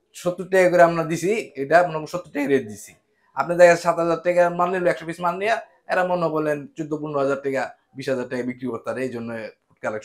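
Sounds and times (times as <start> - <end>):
man talking: 0.1 - 10.0.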